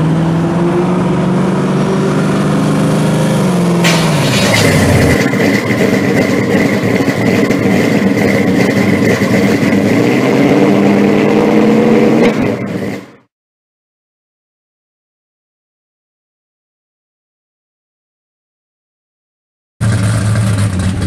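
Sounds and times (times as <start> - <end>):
car engine driving by: 0.0 - 13.3
rough engine with high whine: 0.0 - 13.3, 19.8 - 21.0.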